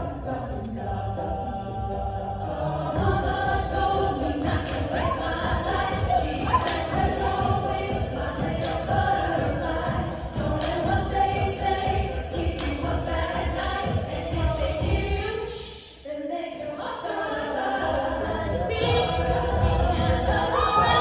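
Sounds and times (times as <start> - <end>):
vocal percussion beat: 0.0 - 16.0, 17.0 - 21.0
a cappella group singing: 0.0 - 21.0.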